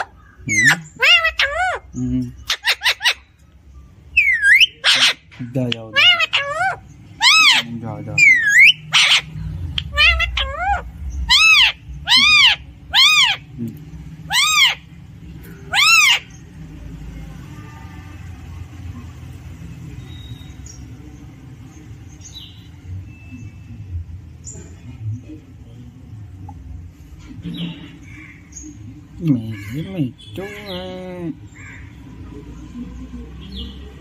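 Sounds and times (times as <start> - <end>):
parakeet calling: 0.0 - 16.7, 27.4 - 32.3
faint chirps: 16.3 - 30.4.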